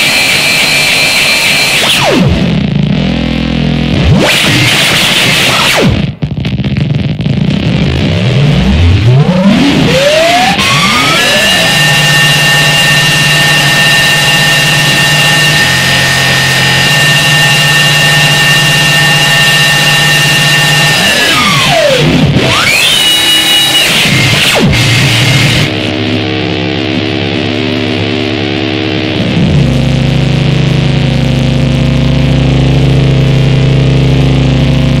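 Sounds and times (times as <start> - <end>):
electronic noise music: 0.0 - 35.0.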